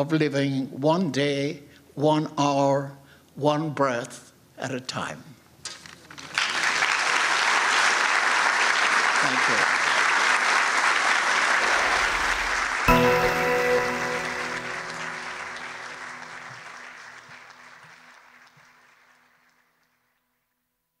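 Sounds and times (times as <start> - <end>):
audience applauding: 6.2 - 20.2
ringing musical chord: 11.7 - 17.8.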